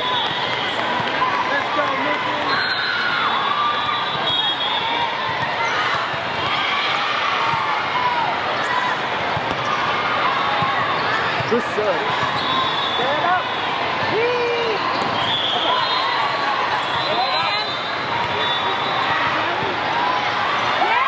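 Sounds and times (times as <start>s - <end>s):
many voices calling and chattering: 0.0s - 21.0s
volleyballs thudding: 9.1s - 9.8s
sneakers squeaking on floor: 10.6s - 19.9s.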